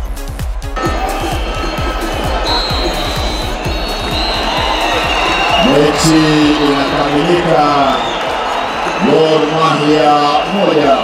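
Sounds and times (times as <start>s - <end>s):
electronic dance music: 0.0s - 11.0s
stadium crowd noise: 0.0s - 11.0s.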